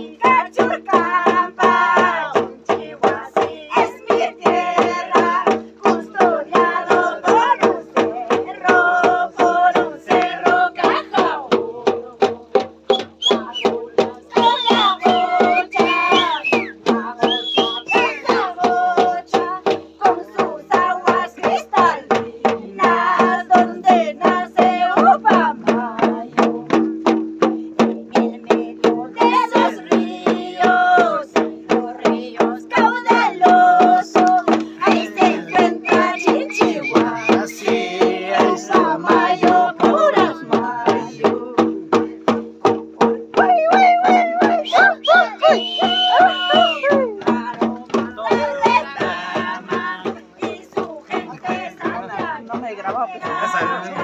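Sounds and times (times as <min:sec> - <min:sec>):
women singing high: 0:00.0 - 0:26.7, 0:27.8 - 0:42.1, 0:43.0 - 0:54.0
hand drums beaten steadily: 0:00.0 - 0:54.0.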